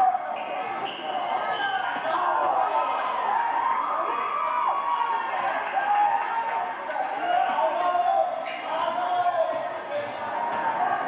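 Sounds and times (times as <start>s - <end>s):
spectators chattering: 0.0s - 11.0s.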